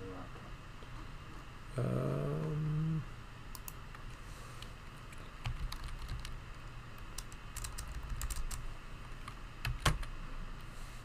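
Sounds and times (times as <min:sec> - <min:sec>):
computer keyboard typing: 0:05.4 - 0:06.4, 0:07.2 - 0:08.6, 0:09.2 - 0:10.1.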